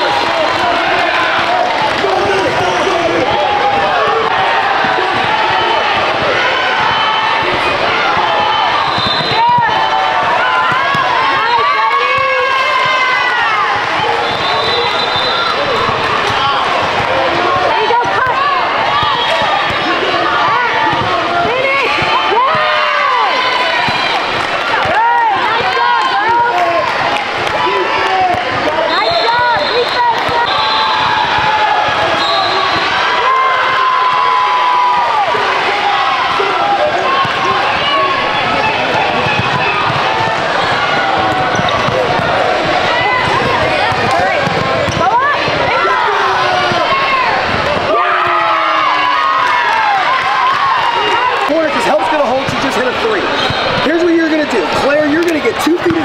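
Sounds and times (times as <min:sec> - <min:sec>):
people talking and calling out: 0:00.0 - 0:56.0
basketball bouncing: 0:01.8 - 0:26.6, 0:27.4 - 0:33.0, 0:37.0 - 0:48.0
sneaker squeaks: 0:08.5 - 0:09.8, 0:40.6 - 0:42.2, 0:53.3 - 0:54.0.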